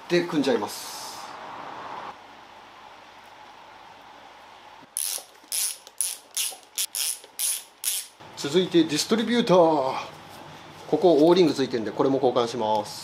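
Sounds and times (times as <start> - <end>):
ratchet wrench clicking: 5.0 - 8.2.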